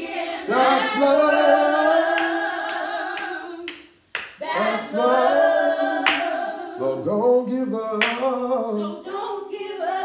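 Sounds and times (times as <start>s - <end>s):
voices singing a worship song: 0.0s - 10.0s.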